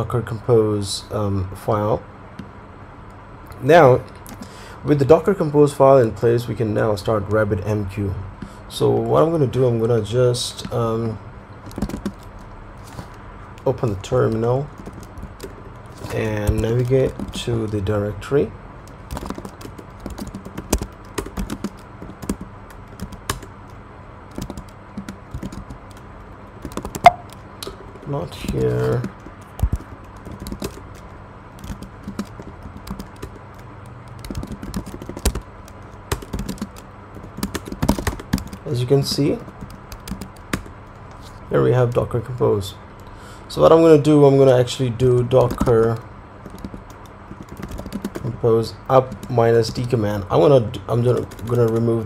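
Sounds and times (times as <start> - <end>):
computer keyboard typing: 11.6 - 12.5, 13.6 - 17.8, 18.9 - 23.5, 24.3 - 27.4, 28.4 - 40.7, 45.3 - 50.0, 50.9 - 52.0.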